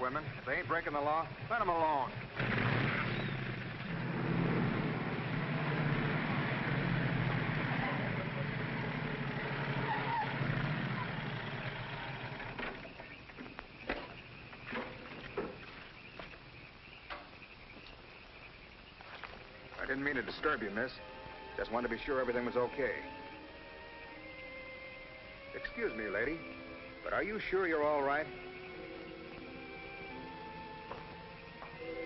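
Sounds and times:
vehicle engine running: 0.0s - 13.7s.

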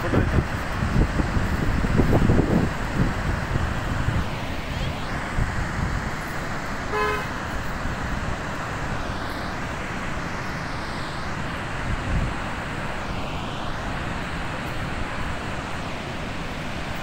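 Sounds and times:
floodwater rushing through spillway: 0.0s - 17.0s
horn toot: 6.9s - 7.3s.

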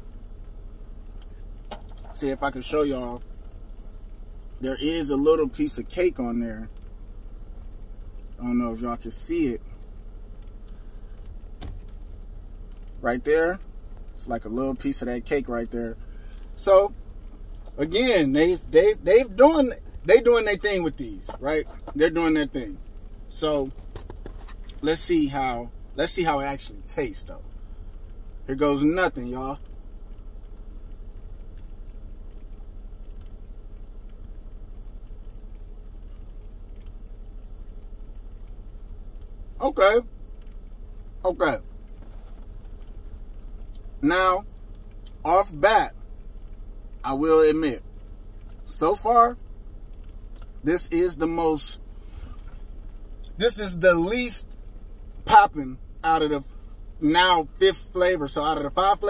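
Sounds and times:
low background rumble: 0.0s - 59.0s.

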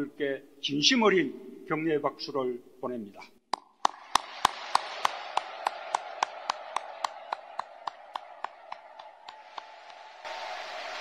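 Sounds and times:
audience applause: 3.6s - 11.0s
man clapping near microphone: 3.6s - 11.0s.

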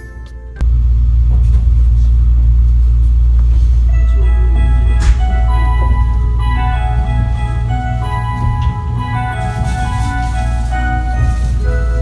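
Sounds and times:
background music: 0.0s - 0.6s, 3.9s - 12.0s
train running low rumble: 0.6s - 12.0s.

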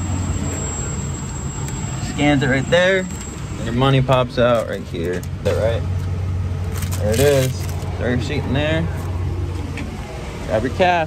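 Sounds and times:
faint high whine: 0.0s - 6.7s
vehicle engine idling: 0.0s - 11.0s.

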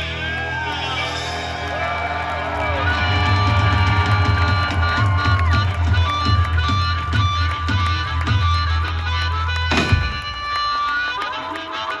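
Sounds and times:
bass guitar: 0.0s - 10.3s
drums: 0.0s - 11.2s
crowd cheering: 0.0s - 12.0s
amplified harmonica: 2.6s - 12.0s.

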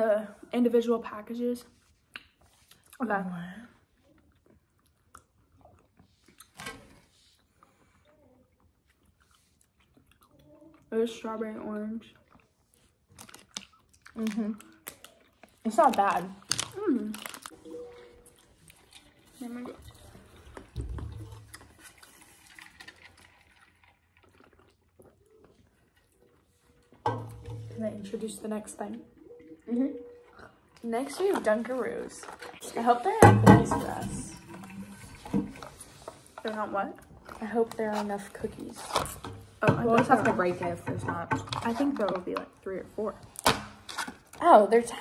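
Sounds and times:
faint chewing: 1.6s - 32.9s.

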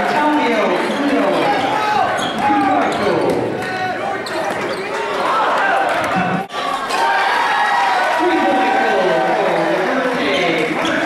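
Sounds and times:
indistinct shouts and voices: 0.0s - 11.0s.

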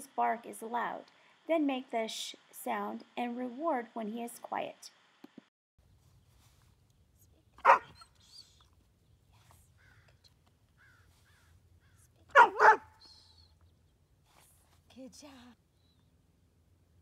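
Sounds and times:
dog barking: 7.6s - 8.0s, 12.3s - 12.9s.

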